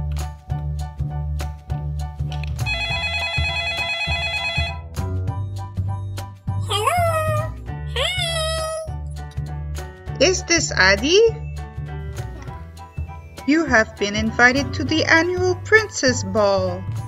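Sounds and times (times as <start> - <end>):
children's music with bass beat: 0.0 - 17.0
phone ringtone: 2.6 - 4.9
child's voice: 6.6 - 8.9.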